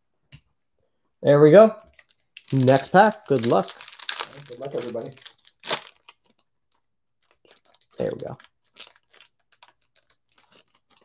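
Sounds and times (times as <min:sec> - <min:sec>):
foil wrapper crinkling and tearing: 0:02.0 - 0:06.5, 0:07.2 - 0:11.0.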